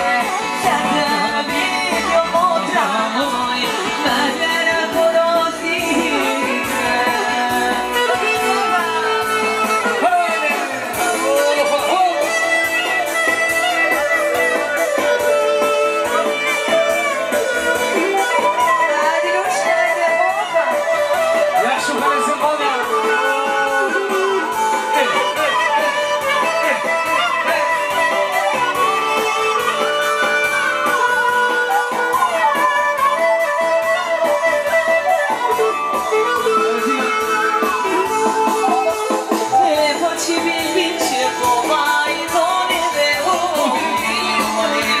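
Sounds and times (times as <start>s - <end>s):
band playing folk dance music: 0.0s - 45.0s
violin melody: 0.0s - 45.0s.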